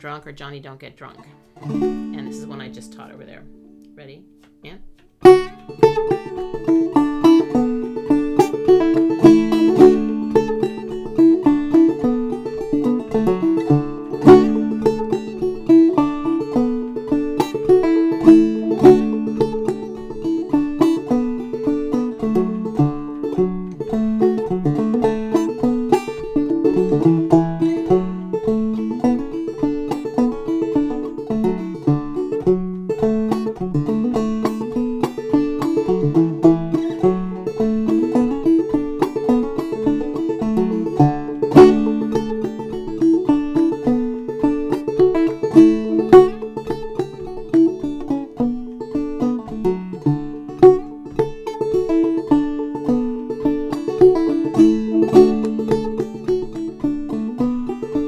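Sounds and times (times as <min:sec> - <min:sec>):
solo banjo playing: 0:00.0 - 0:58.0.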